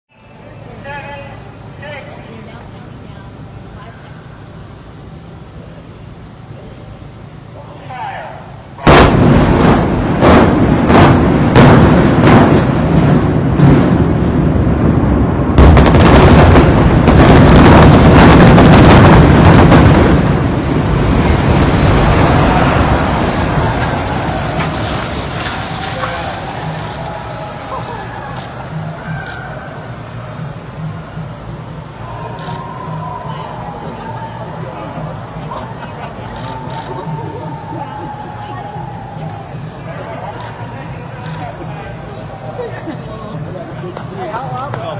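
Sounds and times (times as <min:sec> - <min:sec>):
demolition charges blasting: 0:08.2 - 0:35.4
building collapsing rumble: 0:08.8 - 0:35.4.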